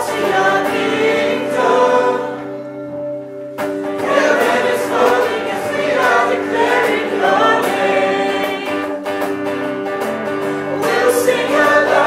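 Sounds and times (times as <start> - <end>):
electric guitar chords: 0.0 - 12.0.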